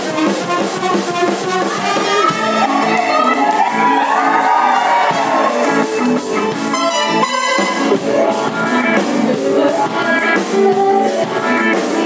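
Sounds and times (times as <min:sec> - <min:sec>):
electric guitar: 0:00.0 - 0:12.0
live band playing show tune: 0:00.0 - 0:12.0.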